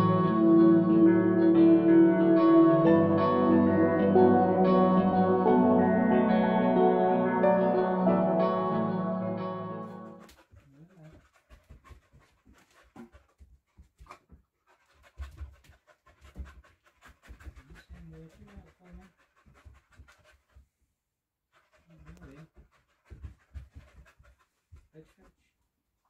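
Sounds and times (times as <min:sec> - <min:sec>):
dog panting: 0:10.1 - 0:20.6, 0:21.5 - 0:25.4.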